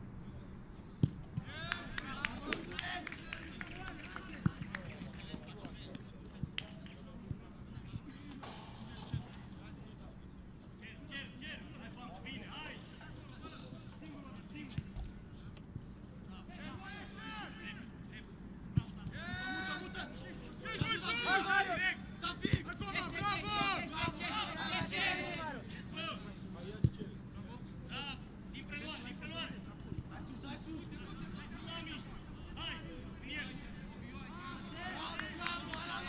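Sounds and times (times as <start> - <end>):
players shouting: 19.1 - 26.2, 34.2 - 36.0.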